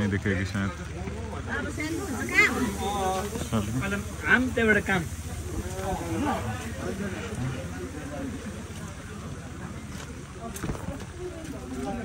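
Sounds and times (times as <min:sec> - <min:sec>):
people talking: 0:00.0 - 0:12.0
rain falling: 0:00.0 - 0:12.0.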